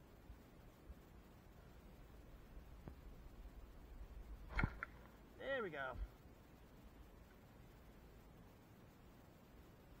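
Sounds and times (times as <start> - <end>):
bowstring snapping: 4.4 - 5.1.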